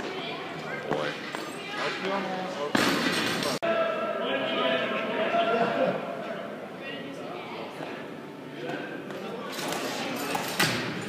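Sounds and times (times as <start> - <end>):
people's voices in a hall: 0.0 - 11.0.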